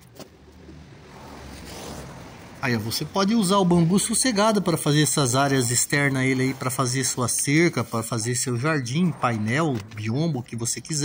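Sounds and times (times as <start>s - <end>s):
car passing: 0.0s - 11.0s.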